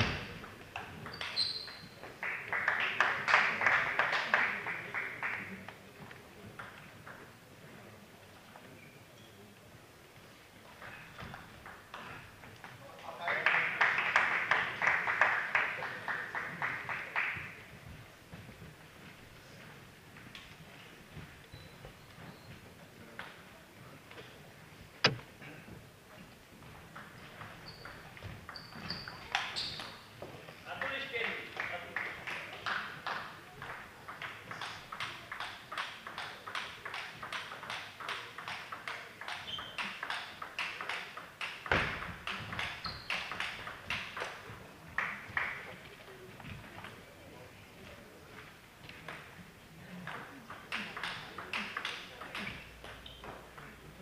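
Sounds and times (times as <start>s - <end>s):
faint hall murmur: 0.0s - 54.0s
spectators clapping in rhythm: 2.0s - 5.8s, 13.1s - 17.6s, 30.8s - 45.7s
table tennis balls clicking: 33.1s - 44.6s, 50.0s - 53.8s.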